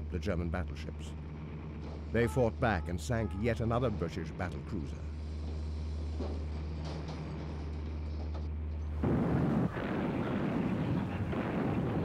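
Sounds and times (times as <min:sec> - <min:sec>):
heavy gun blast: 0:09.0 - 0:12.0
low rumble: 0:09.0 - 0:12.0.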